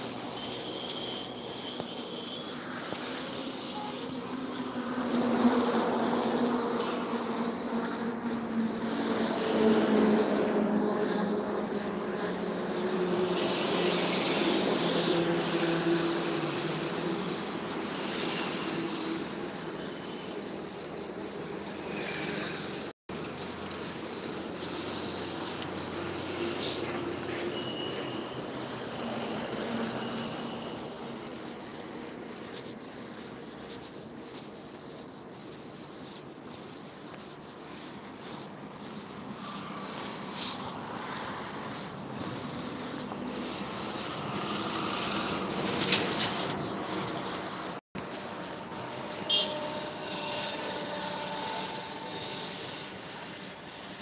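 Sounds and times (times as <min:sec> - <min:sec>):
road noise: 0:00.0 - 0:54.0.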